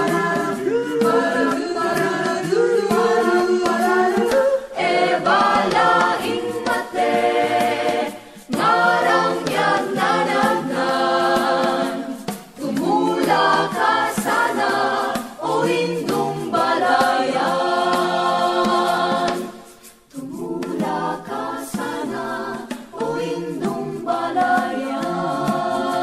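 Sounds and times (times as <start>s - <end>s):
choir singing: 0.0s - 26.0s.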